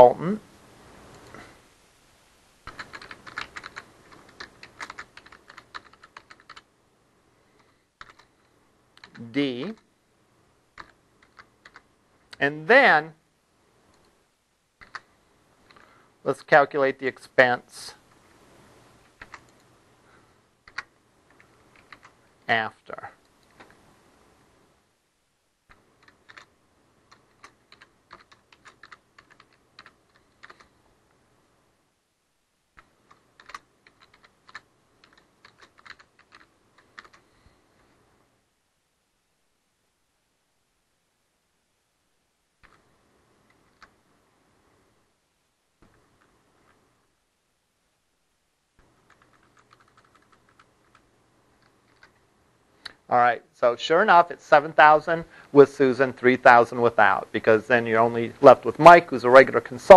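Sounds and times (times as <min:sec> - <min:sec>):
computer keyboard typing: 0:02.7 - 0:06.7, 0:07.6 - 0:09.8, 0:10.8 - 0:11.9, 0:14.8 - 0:15.9, 0:19.2 - 0:19.6, 0:20.6 - 0:22.2, 0:25.7 - 0:26.5, 0:27.1 - 0:30.8, 0:32.8 - 0:37.3, 0:42.6 - 0:42.9, 0:43.5 - 0:44.0, 0:48.8 - 0:52.2.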